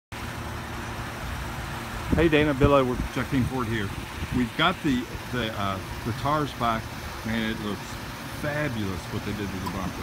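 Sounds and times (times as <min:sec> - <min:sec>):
low mechanical hum: 0:00.2 - 0:10.0.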